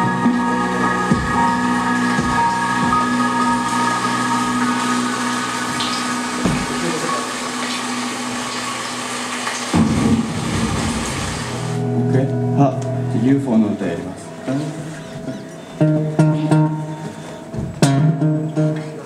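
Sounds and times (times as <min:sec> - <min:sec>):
synthesizer chords: 0:00.0 - 0:08.6, 0:09.8 - 0:19.0
rushing noise wash: 0:00.0 - 0:12.0
low thumps: 0:05.7 - 0:06.9, 0:09.7 - 0:11.9.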